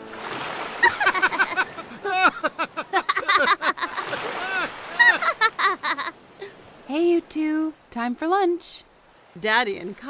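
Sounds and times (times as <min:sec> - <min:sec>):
surf washing in: 0:00.0 - 0:07.9
cartoon voices laughing: 0:00.8 - 0:06.1.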